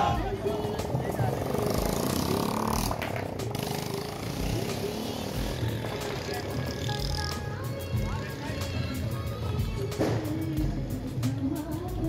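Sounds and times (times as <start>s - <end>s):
crowd voices: 0.0s - 11.9s
motor traffic: 0.0s - 12.0s.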